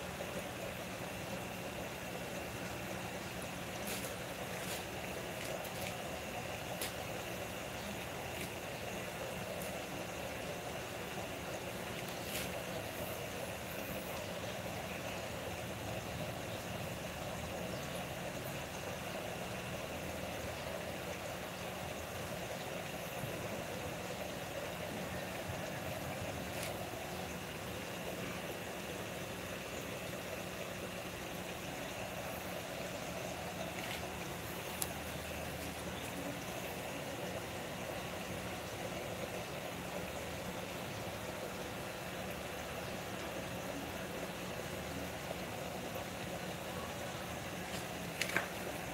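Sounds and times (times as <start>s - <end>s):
background hum and hiss: 0.0s - 48.9s.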